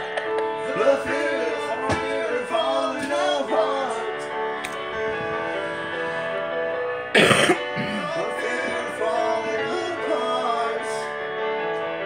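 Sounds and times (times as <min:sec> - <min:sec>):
recorded song playing: 0:00.0 - 0:12.0
loud cough or throat-clear: 0:07.1 - 0:08.1.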